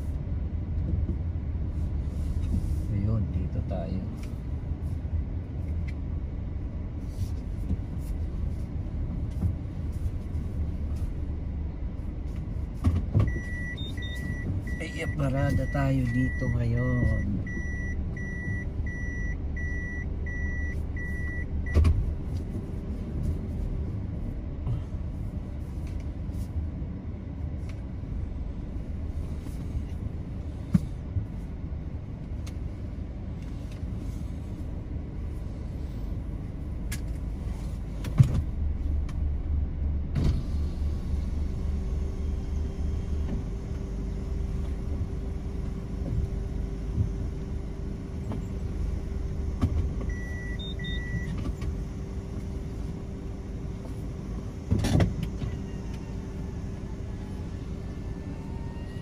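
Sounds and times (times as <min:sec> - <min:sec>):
car engine and cabin rumble: 0:00.0 - 0:59.0
short high beeps: 0:50.1 - 0:51.3.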